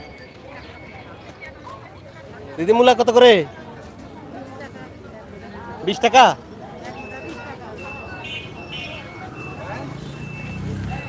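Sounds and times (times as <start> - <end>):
vehicle reversing beeper: 0.0 - 1.9, 6.8 - 11.0.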